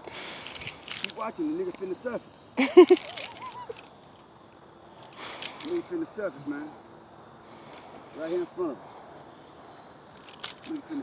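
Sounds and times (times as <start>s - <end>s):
outdoor background: 0.0s - 11.0s
jingling clicking rattle: 0.4s - 1.9s, 2.6s - 4.3s, 5.0s - 6.0s, 10.0s - 10.9s.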